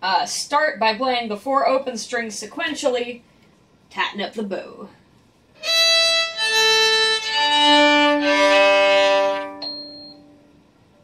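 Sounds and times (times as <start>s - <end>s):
violin open strings bowed: 5.6s - 10.4s.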